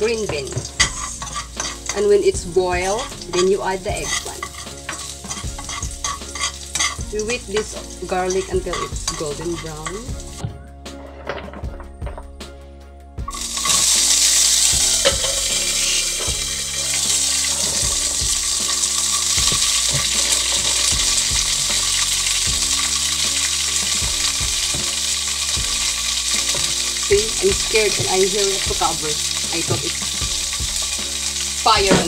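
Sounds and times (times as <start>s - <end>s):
food sizzling in hot oil: 0.0s - 10.5s, 13.3s - 32.0s
utensil knocking pan: 0.0s - 10.6s, 13.3s - 32.0s.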